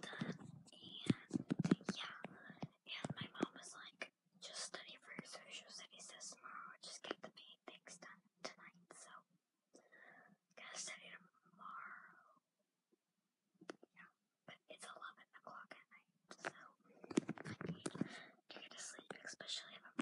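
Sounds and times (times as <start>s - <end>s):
girl whispering: 0.0s - 9.2s, 10.6s - 12.4s, 14.0s - 16.8s, 17.4s - 20.0s.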